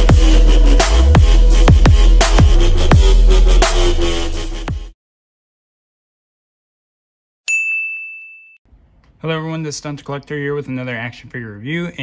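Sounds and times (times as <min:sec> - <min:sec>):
bright ding: 0:07.5 - 0:08.6.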